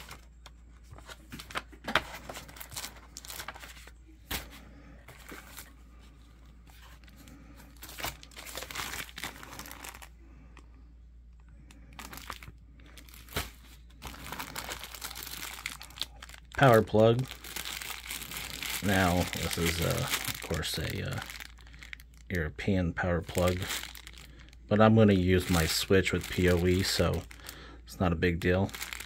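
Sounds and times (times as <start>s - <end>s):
plastic bags crinkling: 0.0s - 4.5s, 6.8s - 10.2s, 11.9s - 29.0s
paper pages rustling: 0.0s - 10.0s.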